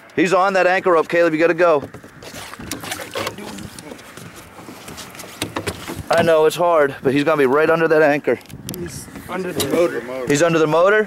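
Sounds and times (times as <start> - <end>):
wind and water hiss: 0.0 - 11.0
light clicks and knocks: 1.8 - 6.3.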